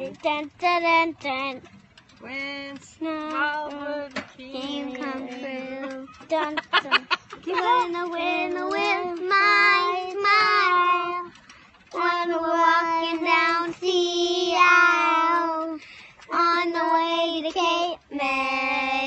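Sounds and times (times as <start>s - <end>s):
child singing: 3.0s - 6.6s, 7.5s - 11.3s, 11.9s - 19.0s.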